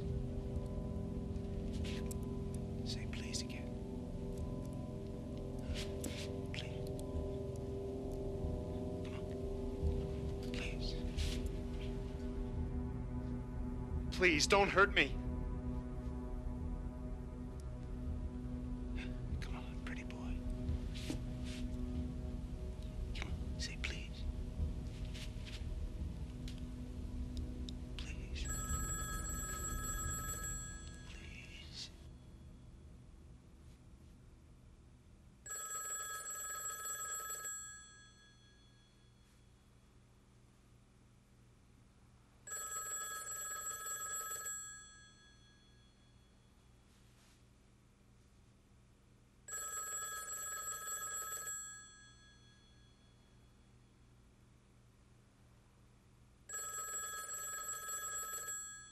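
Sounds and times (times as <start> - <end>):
low rumble: 14.8 - 29.0
telephone bell ringing: 28.4 - 31.1, 35.5 - 39.4, 42.5 - 46.4, 49.5 - 53.4, 56.5 - 58.9.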